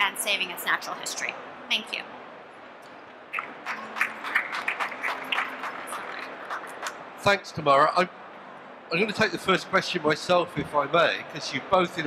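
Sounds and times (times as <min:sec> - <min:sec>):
small audience clapping: 0:03.3 - 0:07.0.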